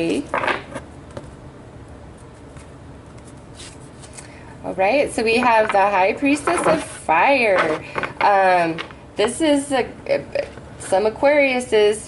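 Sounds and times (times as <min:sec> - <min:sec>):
low room hum: 0:00.0 - 0:12.0
cards being shuffled by hand: 0:02.2 - 0:04.4, 0:05.4 - 0:07.0.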